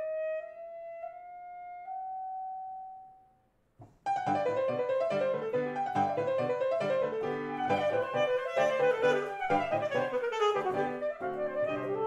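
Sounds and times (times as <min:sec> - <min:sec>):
piano: 0:00.0 - 0:12.0
alto saxophone long high note: 0:07.7 - 0:12.0.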